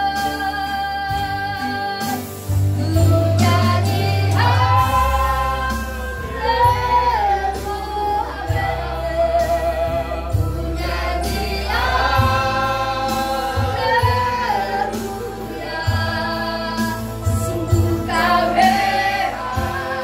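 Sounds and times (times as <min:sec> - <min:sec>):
acoustic guitar: 0:00.0 - 0:20.0
congregation singing: 0:00.0 - 0:20.0.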